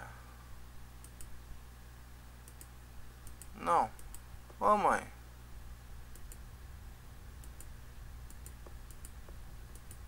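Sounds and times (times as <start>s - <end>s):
low steady hum: 0.0s - 10.0s
faint computer mouse clicks: 1.0s - 1.4s, 2.4s - 4.2s, 6.1s - 6.4s, 7.4s - 10.0s.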